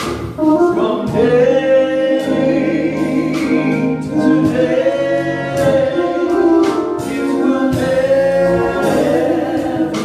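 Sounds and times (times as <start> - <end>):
choir singing gospel song: 0.4 - 10.0.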